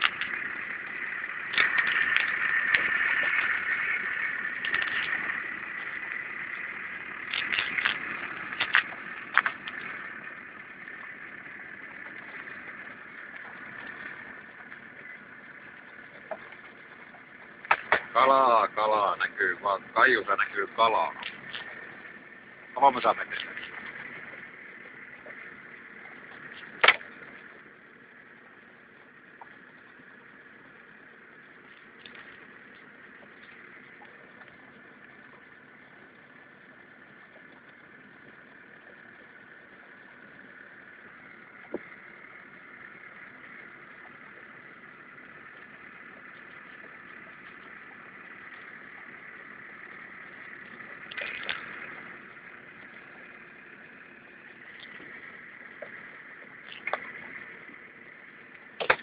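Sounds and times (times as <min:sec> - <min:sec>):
outboard motor running: 0:00.0 - 0:59.0.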